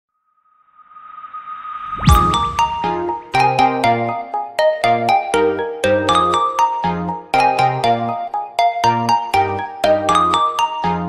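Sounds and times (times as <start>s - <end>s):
steady high tone: 0.6s - 3.9s
rushing riser swell: 0.8s - 3.3s.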